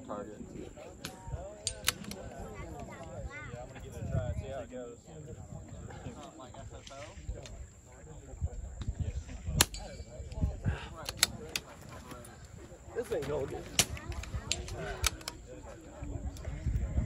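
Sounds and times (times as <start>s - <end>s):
rifle handling clicks and knocks: 1.0s - 3.1s, 11.0s - 15.4s.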